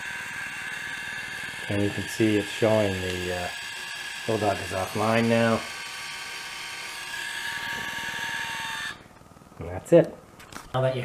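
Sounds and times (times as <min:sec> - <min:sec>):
electric gear motor whining: 0:00.0 - 0:09.0.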